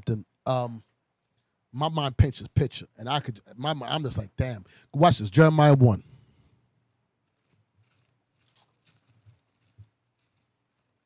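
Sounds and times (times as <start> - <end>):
faint ticks or rustles: 7.2 - 11.0.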